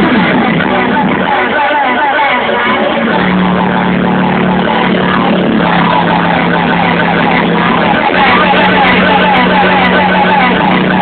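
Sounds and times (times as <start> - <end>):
crowd noise: 0.0 - 11.0
distorted live concert music: 0.0 - 11.0
gliding sung or synth line: 0.0 - 11.0.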